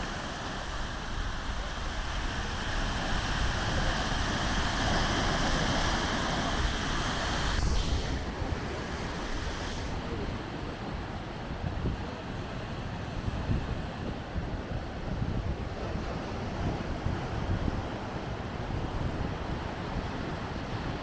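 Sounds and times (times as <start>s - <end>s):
surf washing over rocks: 0.0s - 21.0s
wind rumble on microphone: 0.0s - 21.0s.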